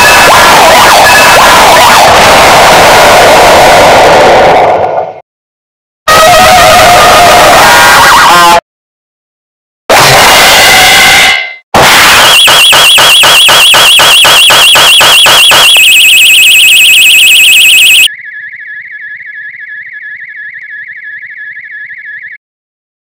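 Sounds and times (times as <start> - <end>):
warbling alarm-like tone: 11.8 - 18.1.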